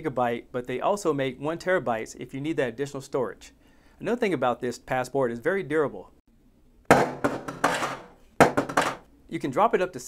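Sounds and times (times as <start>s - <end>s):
drive hitting the floor: 6.9s - 9.0s
clattering knocks of bouncing drive: 6.9s - 9.1s.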